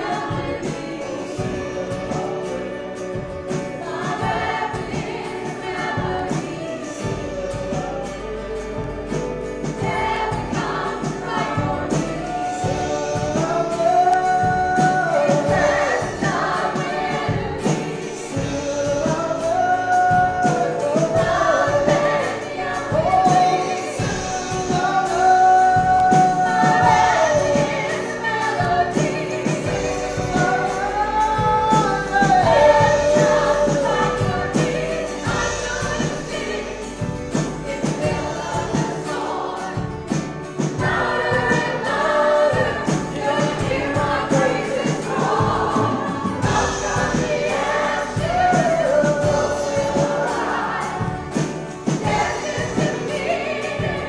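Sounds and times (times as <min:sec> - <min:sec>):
strummed acoustic guitar: 0:00.0 - 0:54.0
voices singing slow melody: 0:00.0 - 0:54.0.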